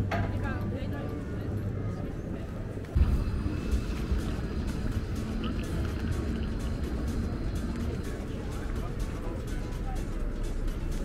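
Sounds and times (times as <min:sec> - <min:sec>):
traffic rumble: 0:00.0 - 0:11.0
voices of passers-by: 0:00.0 - 0:11.0.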